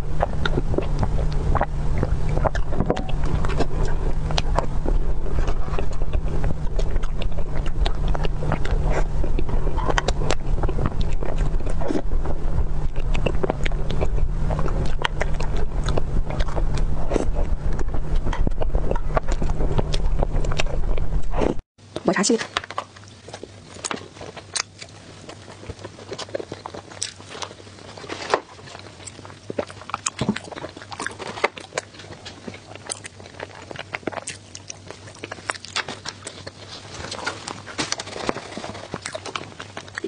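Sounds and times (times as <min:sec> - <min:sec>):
low rumble: 0:00.0 - 0:21.6.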